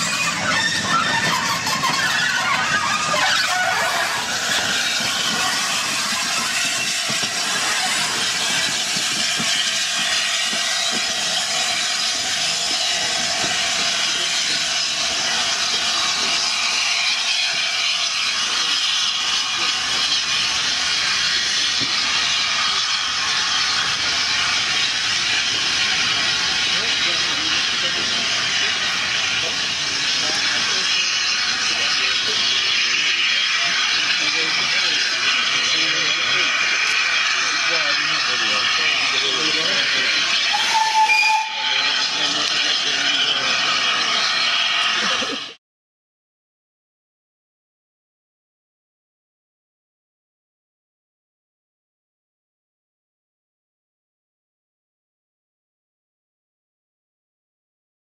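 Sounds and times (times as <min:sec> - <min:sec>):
wheel squeal: 0:00.0 - 0:45.3
steam locomotive hissing: 0:00.0 - 0:45.6.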